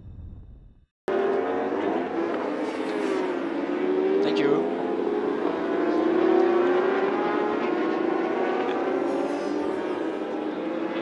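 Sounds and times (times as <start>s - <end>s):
motorbikes passing at high revs: 1.1s - 11.0s.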